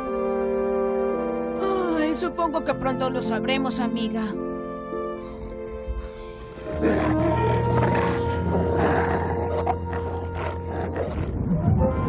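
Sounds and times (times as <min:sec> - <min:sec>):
low droning film score: 0:00.0 - 0:12.0.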